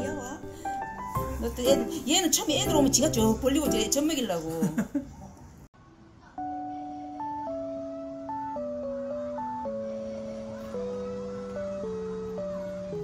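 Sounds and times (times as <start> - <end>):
background music melody: 0.0 - 4.6, 6.1 - 13.0.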